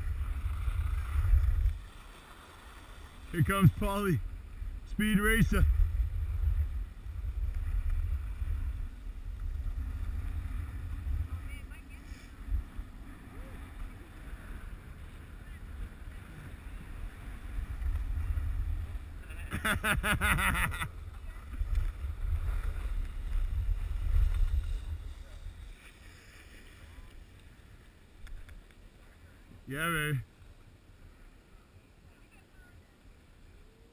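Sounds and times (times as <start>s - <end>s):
wind buffeting microphone: 0.0s - 2.0s, 3.2s - 26.1s
skis hissing on snow: 0.1s - 4.1s, 22.1s - 27.8s
person laughing: 19.2s - 21.0s.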